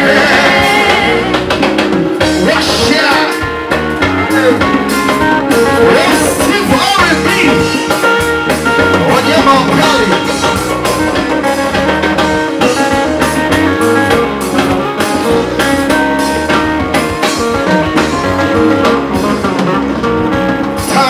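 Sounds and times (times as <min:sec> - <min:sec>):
live band playing: 0:00.0 - 0:21.0.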